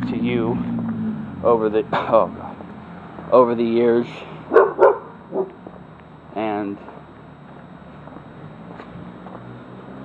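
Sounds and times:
dog barking: 4.5s - 5.6s.

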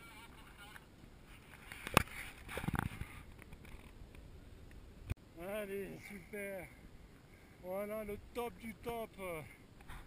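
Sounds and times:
rustling noise: 0.4s - 4.0s.

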